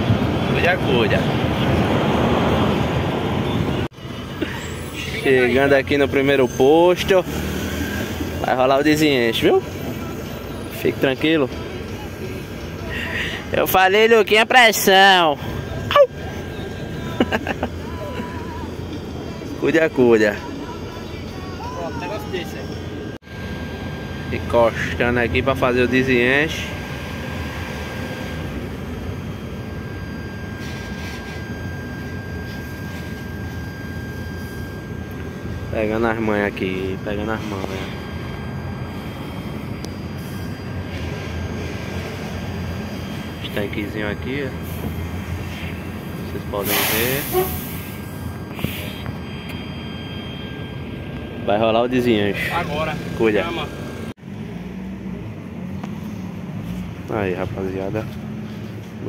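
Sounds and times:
truck diesel engine running: 0.0s - 59.0s
faint high whine: 3.4s - 59.0s.

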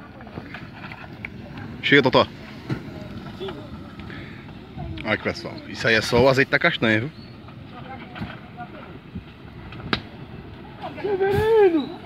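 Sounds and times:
soft pops of fire: 0.0s - 5.4s, 7.1s - 12.0s
fire burning: 0.0s - 12.0s
sharp crack of fire: 0.0s - 12.0s.

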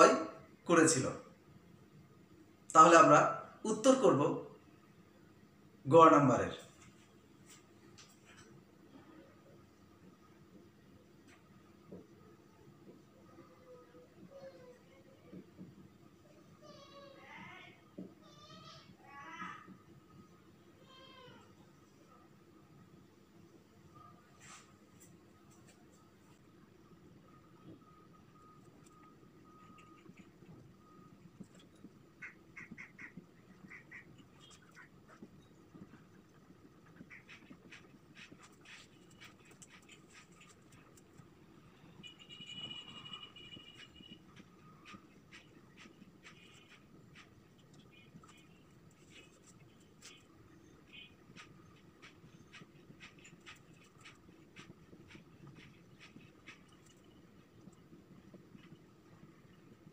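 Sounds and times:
marker squeaking on whiteboard: 28.6s - 59.8s.

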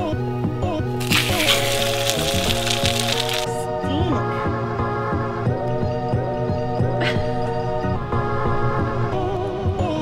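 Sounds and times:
bread sizzling in frying pan: 1.0s - 3.5s.

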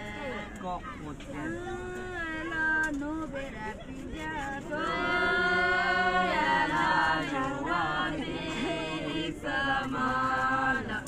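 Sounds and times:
people singing a slow song: 4.0s - 11.0s.

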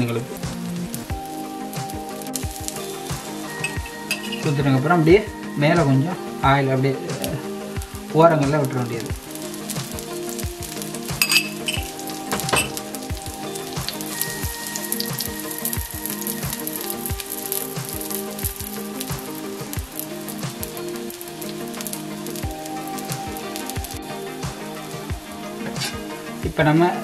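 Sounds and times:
background music: 0.0s - 27.0s
batter sizzling on hot griddle: 0.1s - 4.8s, 7.2s - 26.3s.

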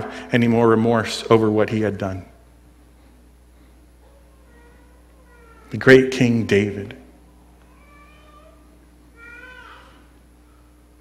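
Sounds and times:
faint high-pitched cries: 4.0s - 5.8s, 7.6s - 10.8s.

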